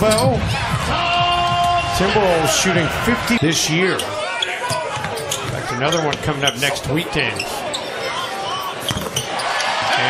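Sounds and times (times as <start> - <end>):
crowd noise: 0.0 - 10.0
shoe squeaks: 3.9 - 9.6.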